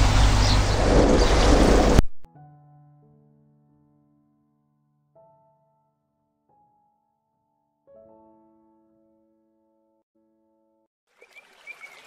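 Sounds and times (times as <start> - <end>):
steady low rumble: 0.0 - 2.3
pond water splashing and churning: 11.1 - 12.0.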